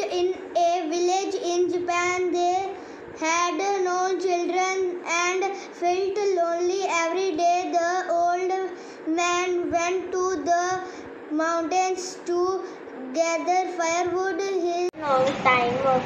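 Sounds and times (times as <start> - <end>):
child reading aloud: 0.0 - 16.0.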